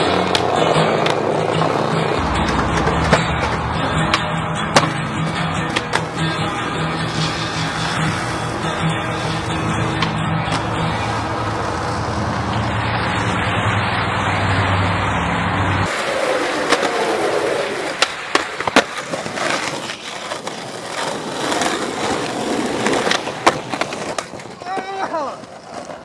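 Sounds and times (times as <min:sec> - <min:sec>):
skateboard clacks on pavement: 0:00.0 - 0:13.4, 0:15.9 - 0:26.0
skateboard wheels rolling on asphalt: 0:00.0 - 0:26.0.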